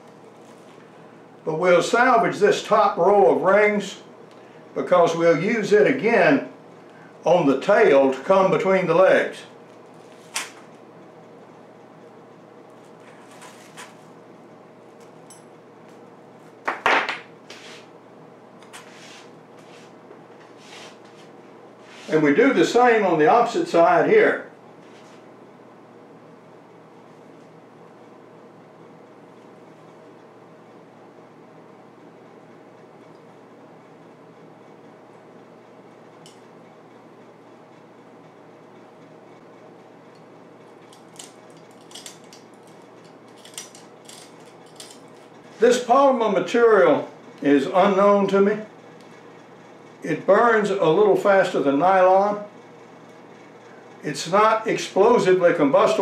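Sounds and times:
faint hum: 0.0 - 56.0.

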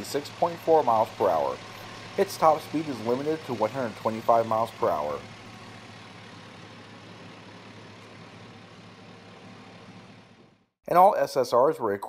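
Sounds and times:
car engine idling: 0.0 - 10.7.

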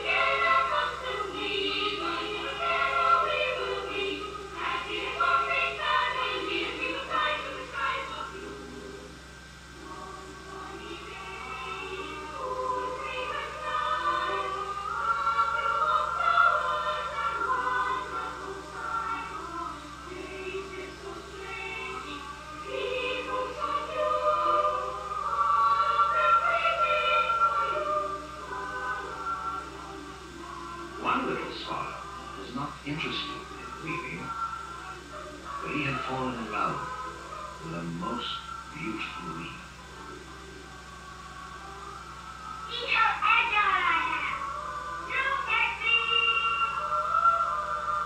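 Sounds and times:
boys' choir singing: 0.0 - 9.0, 9.8 - 39.7
steady low hum: 0.0 - 48.0.

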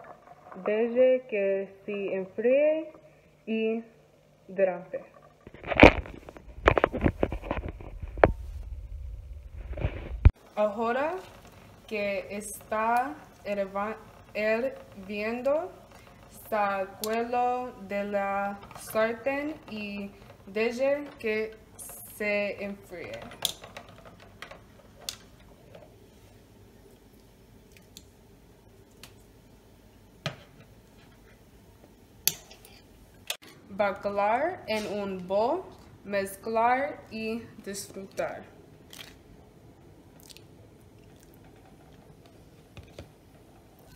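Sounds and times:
pot of water boiling: 0.0 - 3.4, 4.0 - 43.9
metal tongs clicking on tin can: 32.3 - 32.8.

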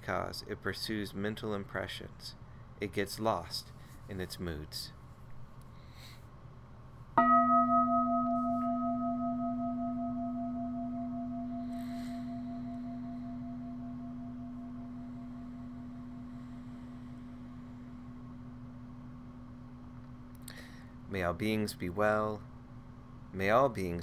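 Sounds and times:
singing bowl ringing: 7.2 - 19.9.

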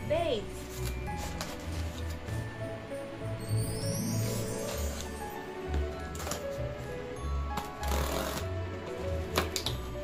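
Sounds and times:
packing tape ripping off cardboard: 7.6 - 8.6.

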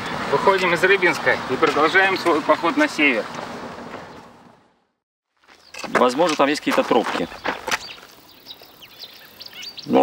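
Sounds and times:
small bird chirping: 7.2 - 10.0.

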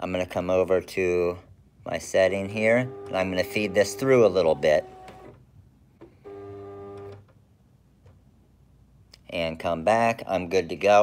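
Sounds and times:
feed motor whine: 2.4 - 5.4, 6.2 - 7.2.

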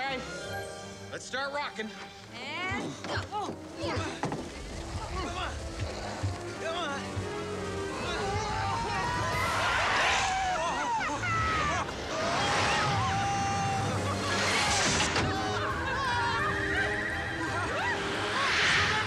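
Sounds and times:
people yelling and screaming: 7.8 - 19.0
whooshes of speeding toy car: 9.2 - 10.8, 11.5 - 15.7, 17.7 - 19.0.

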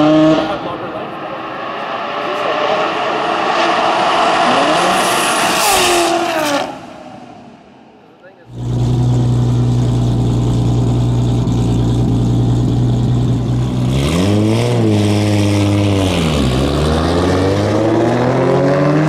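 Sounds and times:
car engines revving: 0.0 - 19.0.

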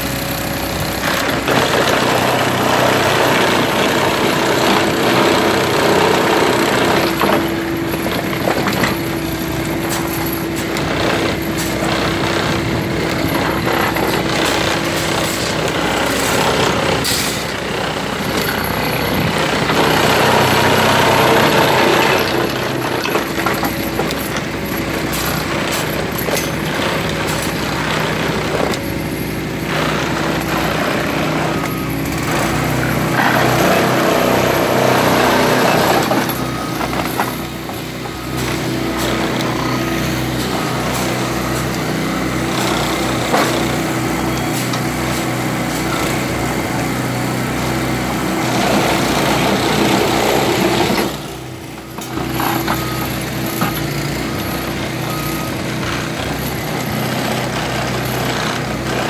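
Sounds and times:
engine running steadily: 0.0 - 59.0
hydraulic tamping machine: 0.0 - 59.0.

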